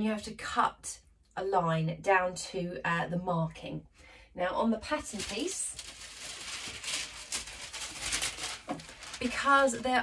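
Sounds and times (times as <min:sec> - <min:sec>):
tracing paper rustling: 0:05.0 - 0:10.0.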